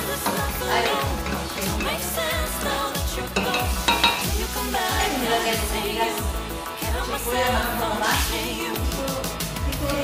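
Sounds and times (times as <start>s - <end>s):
background pop music: 0.0s - 10.0s
spoon scraping metal pot: 3.2s - 4.6s.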